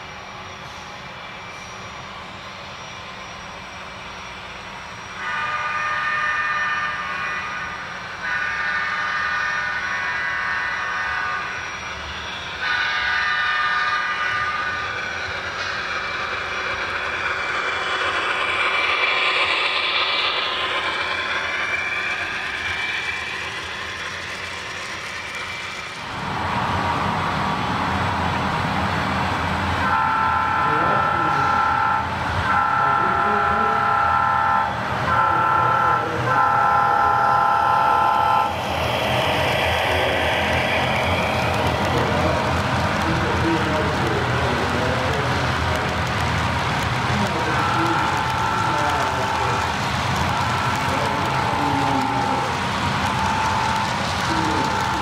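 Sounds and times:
passing train rumble: 0.0s - 55.0s.

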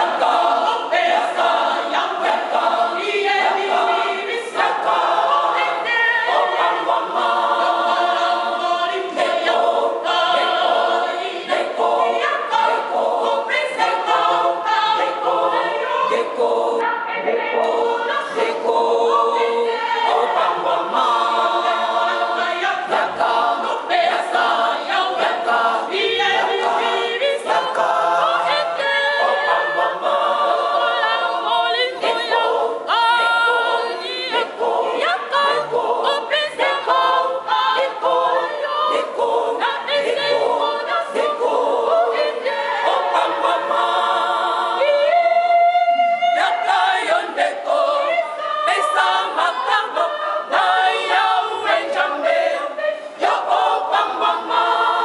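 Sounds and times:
women's choir singing: 0.0s - 55.0s.

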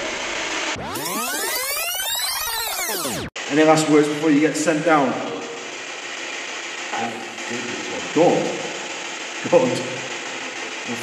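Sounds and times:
radio static hiss: 2.8s - 11.0s.

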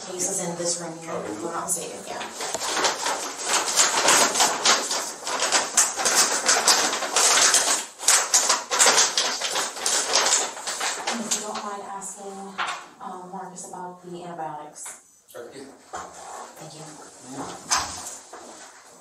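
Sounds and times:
plastic or paper crackling: 0.0s - 12.8s, 15.9s - 19.0s.

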